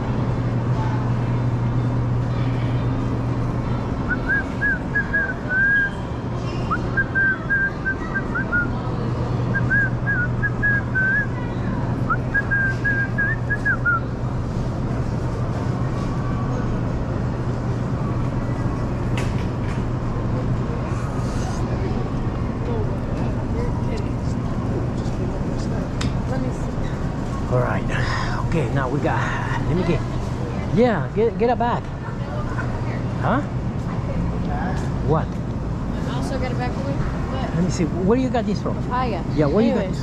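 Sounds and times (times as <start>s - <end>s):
person whistling a tune: 4.1s - 6.0s, 7.0s - 8.7s.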